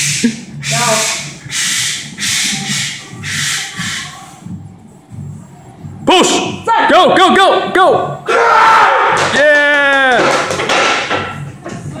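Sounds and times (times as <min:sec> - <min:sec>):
long held shout: 0:08.3 - 0:10.2
barbell plates knocking and rattling: 0:10.2 - 0:11.4.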